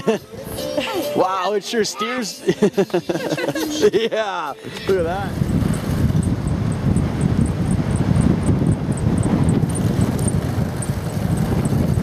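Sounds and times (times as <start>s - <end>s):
wind buffeting microphone: 4.8s - 12.0s.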